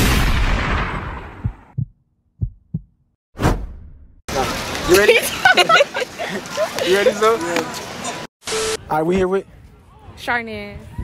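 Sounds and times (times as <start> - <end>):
low heartbeat thumps: 1.3 - 3.0
short whoosh: 3.4 - 4.2
outdoor ambience with voices: 4.3 - 11.0.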